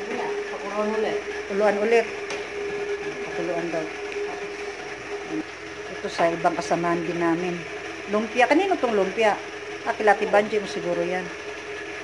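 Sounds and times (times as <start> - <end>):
kitchen appliance humming: 0.0 - 12.0.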